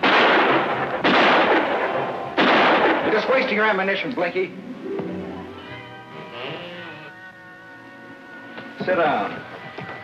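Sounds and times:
background score with held notes: 4.4 - 10.0.

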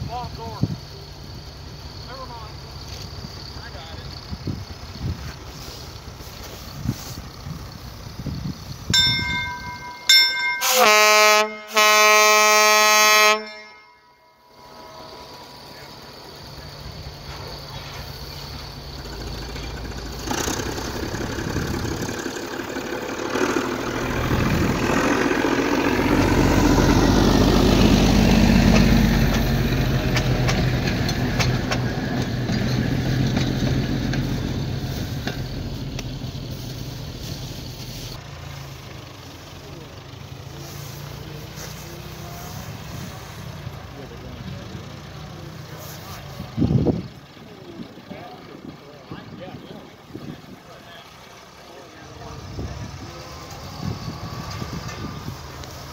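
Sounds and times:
engine rumble passing: 0.0 - 12.7, 13.5 - 55.9
rail motor car horn: 9.6 - 16.1.

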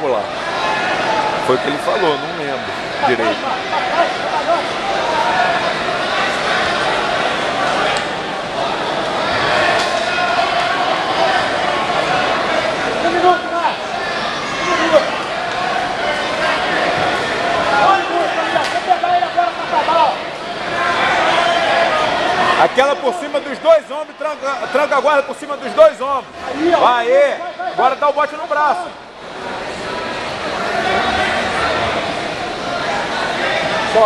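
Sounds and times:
crowd talking in echoing hall: 0.0 - 34.0.

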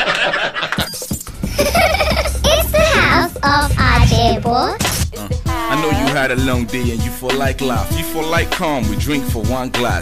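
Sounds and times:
laughter: 0.0 - 2.4.

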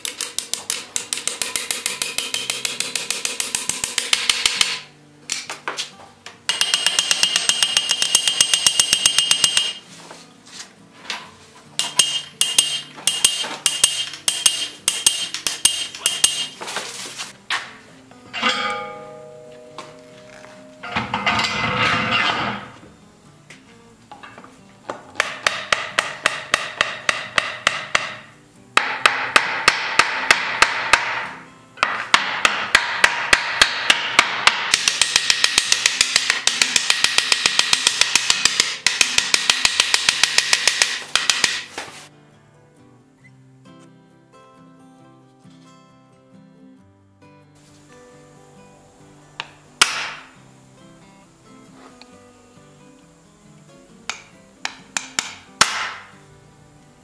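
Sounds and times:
hammer striking metal: 0.0 - 4.9, 6.5 - 9.8, 11.8 - 16.6, 18.3 - 20.0, 20.8 - 22.8, 25.2 - 41.8, 49.4 - 50.3, 54.1 - 56.1.

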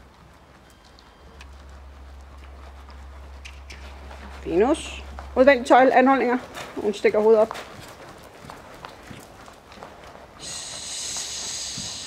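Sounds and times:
hoofbeats on sand: 0.0 - 12.0
high hiss with whir: 10.4 - 12.0.

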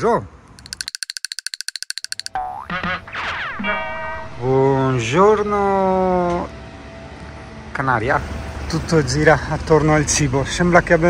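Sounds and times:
fast rattle of high clicks: 0.6 - 2.4.

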